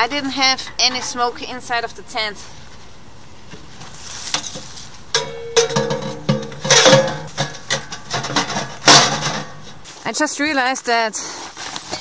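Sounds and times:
metal clanking and knocking: 0:00.2 - 0:01.6, 0:04.4 - 0:09.9.

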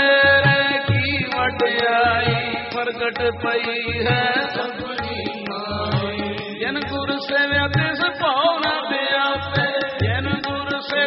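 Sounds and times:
harmonium: 0:00.0 - 0:11.0
men singing a hymn: 0:00.0 - 0:11.0
tabla beat: 0:00.0 - 0:11.0.

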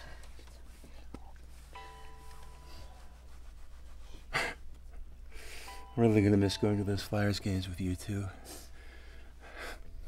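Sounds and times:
held musical tones: 0:01.5 - 0:03.6, 0:05.4 - 0:08.4
man breathing softly: 0:05.3 - 0:05.8, 0:08.4 - 0:10.0.

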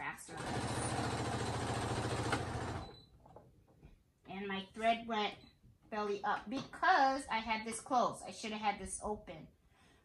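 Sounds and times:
sewing machine stitching: 0:00.3 - 0:03.0.

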